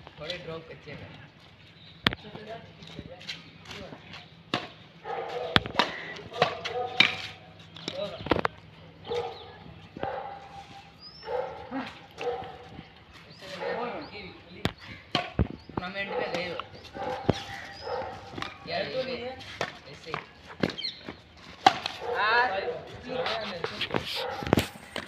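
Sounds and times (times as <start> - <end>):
rackets striking shuttlecock: 14.7 - 16.7.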